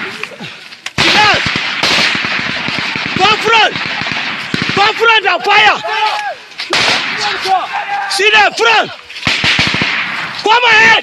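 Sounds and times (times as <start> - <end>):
men shouting: 0.0 - 1.5, 3.2 - 4.1, 4.7 - 9.2
gunshots cracking: 0.9 - 5.4, 6.6 - 7.7, 9.2 - 10.7.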